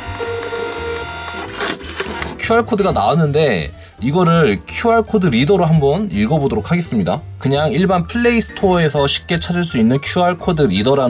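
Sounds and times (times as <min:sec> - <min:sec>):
thermal printer whining: 0:00.0 - 0:02.4.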